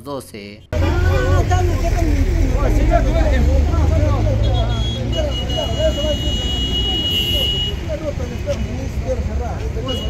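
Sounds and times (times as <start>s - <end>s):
bystanders talking: 0.6s - 10.0s
low rumble of engines and traffic: 0.6s - 10.0s.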